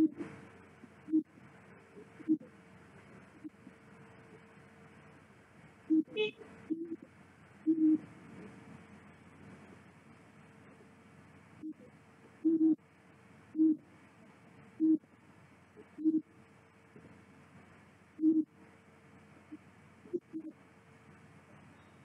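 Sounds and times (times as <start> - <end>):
faint steady hum: 0.0 - 22.0.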